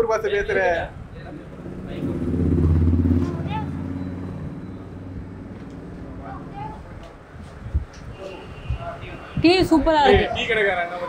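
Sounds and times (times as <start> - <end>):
vehicle engine running: 1.4 - 6.6.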